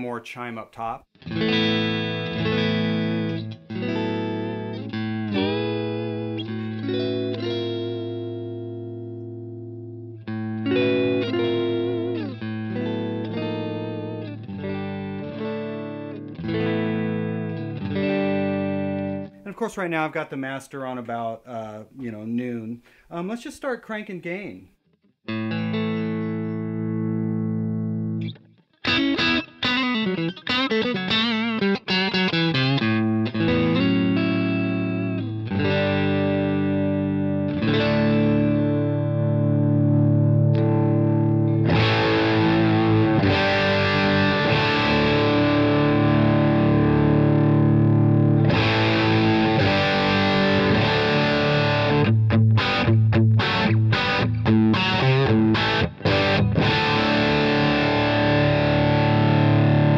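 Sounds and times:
overdriven electric guitar: 1.2 - 19.4, 25.3 - 59.9.

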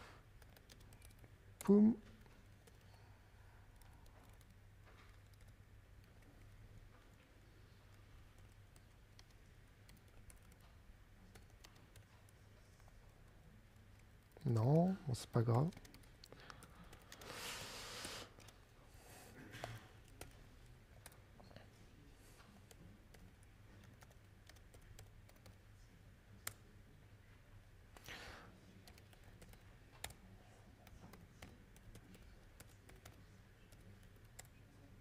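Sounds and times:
low steady hum: 0.0 - 35.0
laptop keyboard typing: 0.2 - 18.7, 19.4 - 21.6, 22.4 - 25.7, 26.3 - 26.8, 28.0 - 35.0.

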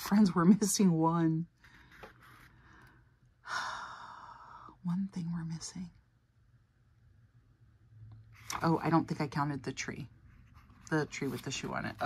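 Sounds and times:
woman speaking: 0.0 - 1.5, 4.6 - 6.0, 8.5 - 10.1, 10.8 - 12.0.

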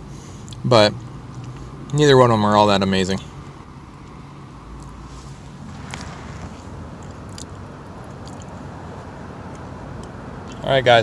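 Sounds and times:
steady low rumble: 4.9 - 9.2.

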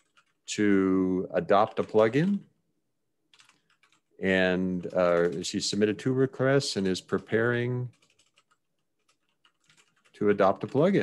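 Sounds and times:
faint keyboard typing: 0.0 - 0.7, 1.4 - 2.5, 3.3 - 11.0.

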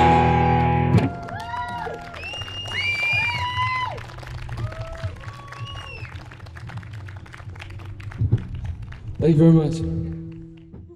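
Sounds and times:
audience applauding: 0.6 - 10.7
whistles: 2.2 - 3.6, 5.4 - 6.2.

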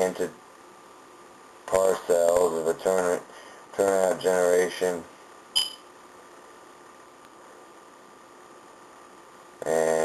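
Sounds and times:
faint room hiss: 0.0 - 10.0
high-pitched blip: 5.6 - 5.9.

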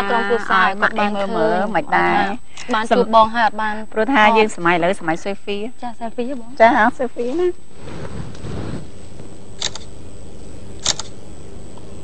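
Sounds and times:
low background hum: 0.0 - 12.0
camera shutter double click: 9.6 - 9.9, 10.8 - 11.2.

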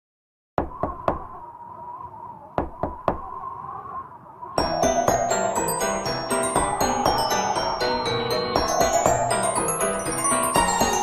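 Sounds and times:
quick knocks: 2.6 - 3.3.

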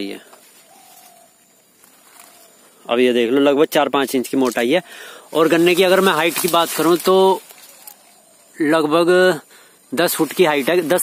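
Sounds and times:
faint low bird call: 0.0 - 2.9.

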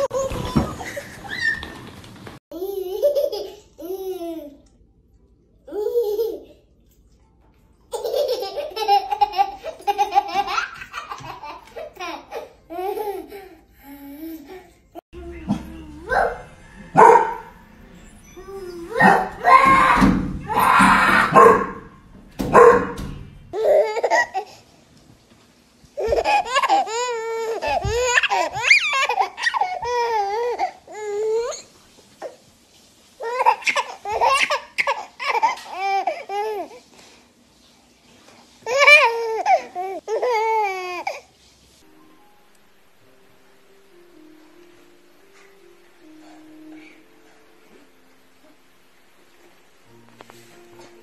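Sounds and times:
toddler laughing: 2.5 - 4.6, 7.9 - 14.7, 23.6 - 24.5, 26.0 - 31.4, 33.2 - 36.7
dog barking: 16.1 - 17.6, 19.0 - 19.4, 21.2 - 23.0.

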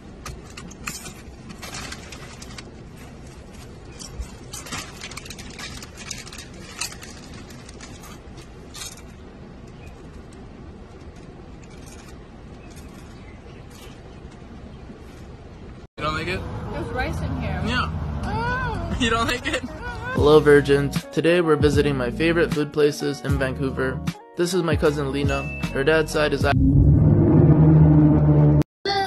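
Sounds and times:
small clicks and rattles: 0.2 - 14.4.

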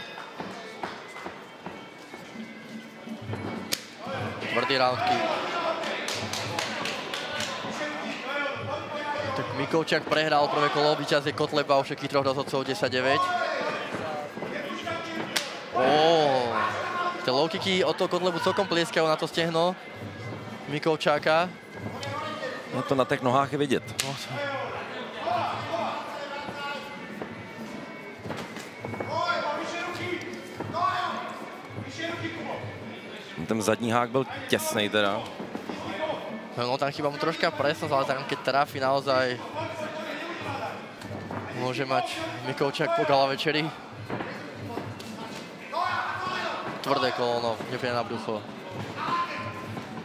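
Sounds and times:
voices shouting in a hall: 3.8 - 50.0
people shouting: 13.2 - 14.0, 45.6 - 47.3
sharp smacks of strikes: 15.3 - 15.6.

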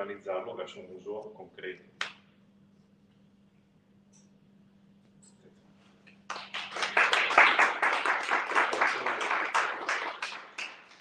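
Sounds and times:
audience applause: 6.3 - 11.0.

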